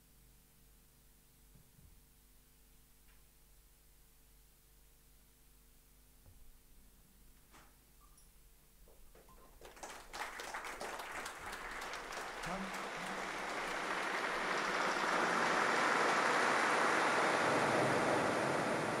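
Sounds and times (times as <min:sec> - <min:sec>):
people clapping: 0:08.9 - 0:19.0.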